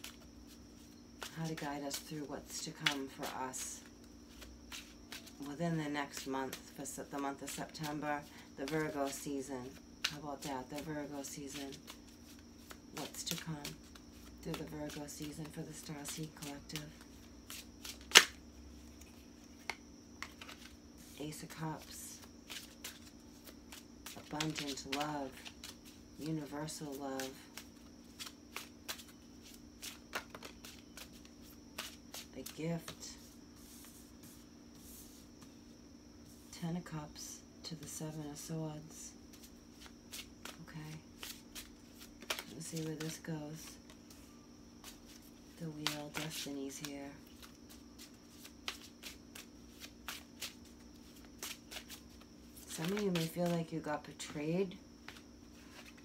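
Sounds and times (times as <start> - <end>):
cards being shuffled: 0.0 - 8.0, 8.6 - 21.2, 21.8 - 35.5, 39.3 - 54.4, 55.0 - 56.0
faint steady hum: 0.0 - 56.0.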